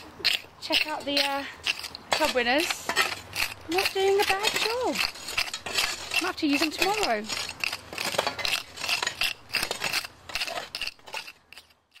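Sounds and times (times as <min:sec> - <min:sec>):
shovels scraping gritty soil: 0:00.0 - 0:12.0.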